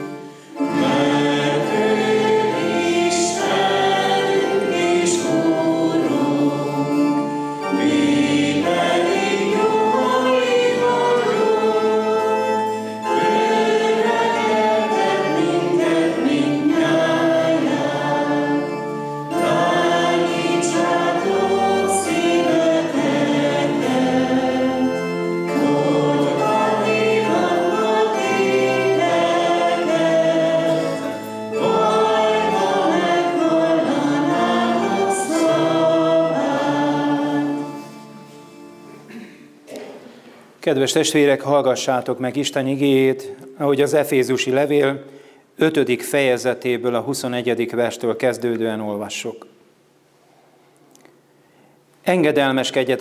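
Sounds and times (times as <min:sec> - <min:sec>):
congregation singing a hymn: 0:00.0 - 0:39.3.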